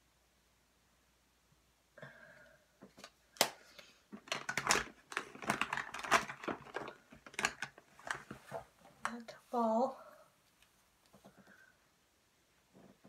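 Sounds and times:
plastic makeup compacts clicking: 3.0s - 8.3s.

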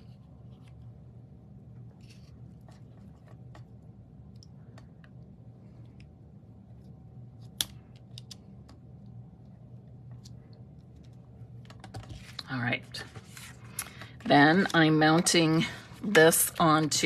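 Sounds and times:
faint low hum: 0.0s - 17.0s.

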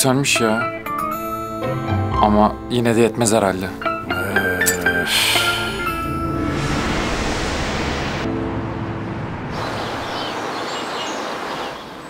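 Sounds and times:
low held music notes: 0.0s - 10.2s
steady rushing noise: 5.6s - 12.0s.

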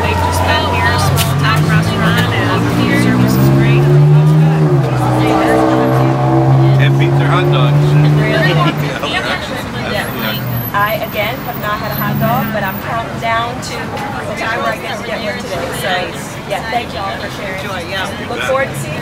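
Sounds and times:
vehicle engine running: 0.0s - 14.1s
people talking: 0.0s - 19.0s.

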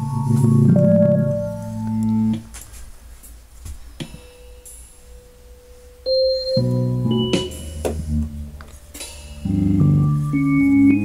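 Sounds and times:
electronic keyboard notes: 0.0s - 2.6s, 4.0s - 11.0s.

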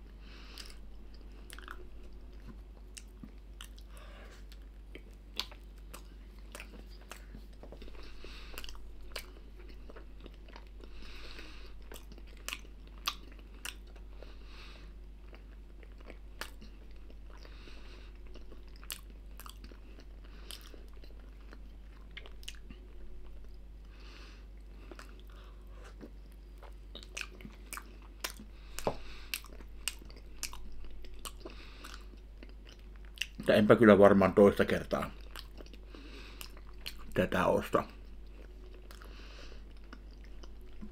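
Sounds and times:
person chewing wetly: 0.0s - 33.6s, 34.9s - 40.9s
steady low hum: 0.0s - 40.9s.

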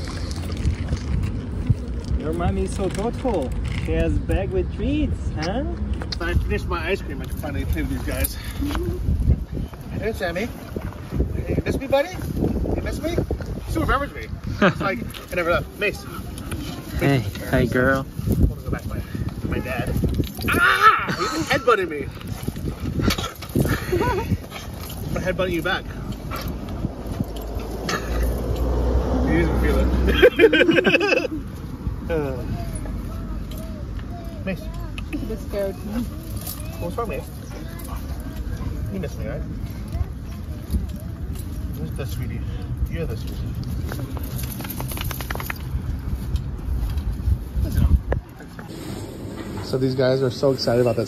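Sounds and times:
wind buffeting microphone: 0.0s - 51.0s
dogs scuffling and snuffling: 43.2s - 48.8s.

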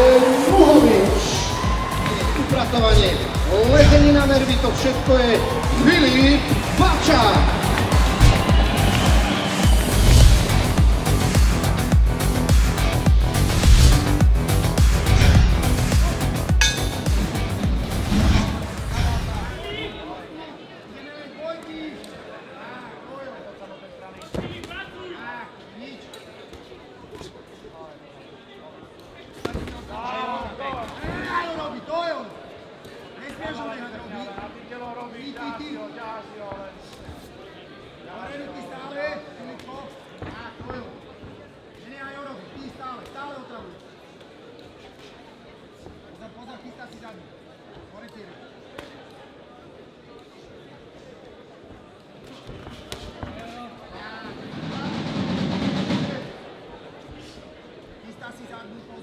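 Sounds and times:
voices shouting in a hall: 0.0s - 11.4s.

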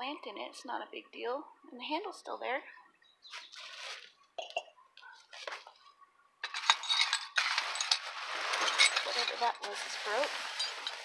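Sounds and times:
plastic trash bags rustling: 3.3s - 4.2s, 6.8s - 11.0s
sharp clinks of broken items: 6.4s - 9.6s.

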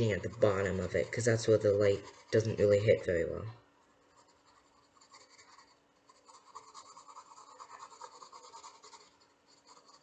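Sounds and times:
pencil scratching on paper: 0.0s - 3.4s, 4.0s - 10.0s.

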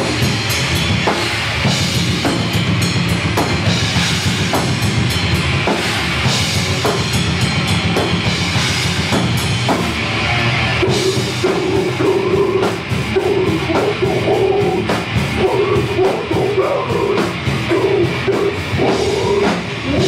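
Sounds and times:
bass guitar: 0.0s - 20.0s
distorted electric guitar: 0.0s - 20.0s
drum kit with bass drum: 0.0s - 20.0s.

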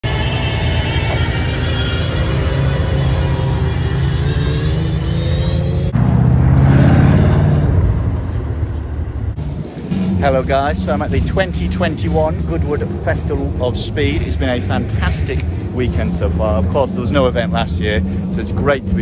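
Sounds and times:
sports car engine droning: 0.0s - 19.0s
sports car accelerating past: 5.3s - 18.9s.

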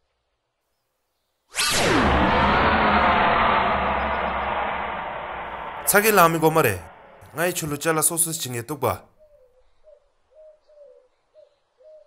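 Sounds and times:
swoosh falling in pitch: 1.6s - 8.1s
reverberant wash: 2.0s - 8.3s.

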